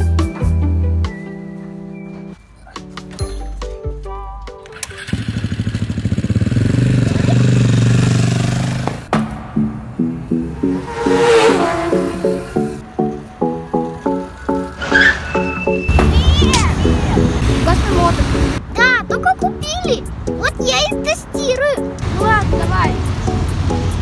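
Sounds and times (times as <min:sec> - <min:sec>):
music with bouncy beat: 0:00.0 - 0:04.6
small engine revving: 0:04.7 - 0:09.1, 0:10.6 - 0:12.8.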